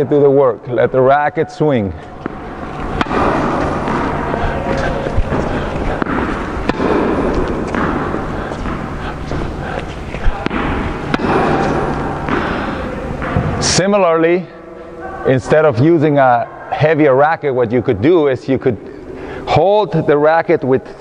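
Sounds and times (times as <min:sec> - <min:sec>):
loud steady background noise: 0:00.0 - 0:21.0
tennis balls bouncing on hard court: 0:02.0 - 0:13.7
tennis balls struck by racket: 0:02.0 - 0:13.7.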